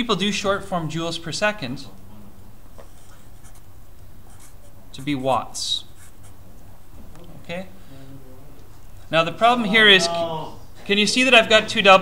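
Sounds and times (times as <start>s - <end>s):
low room hum: 0.0s - 12.0s
marker scratching on paper: 2.8s - 6.4s.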